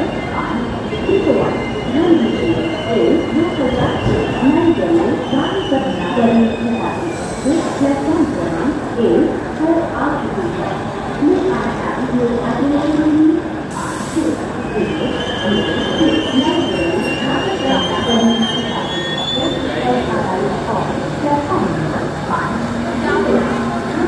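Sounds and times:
train squealing: 0.0 - 7.8, 14.4 - 20.2
people chattering: 0.0 - 24.0.

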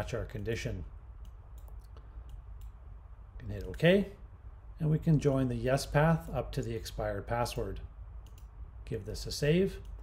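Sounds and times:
low room hiss: 0.0 - 10.0
computer mouse clicks: 1.2 - 2.8, 8.2 - 8.6.

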